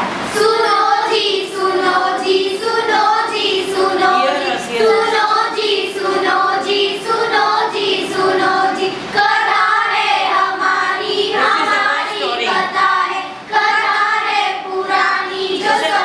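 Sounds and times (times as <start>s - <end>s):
girls singing together: 0.0s - 16.0s.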